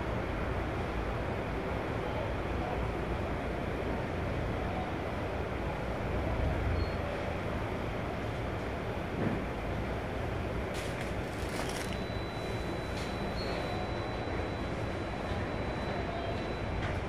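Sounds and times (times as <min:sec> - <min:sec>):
faint high beep: 0:11.4 - 0:17.0.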